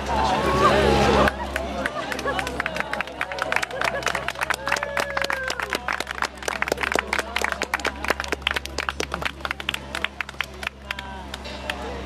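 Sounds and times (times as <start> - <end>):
crowd clapping: 0.5 - 12.0.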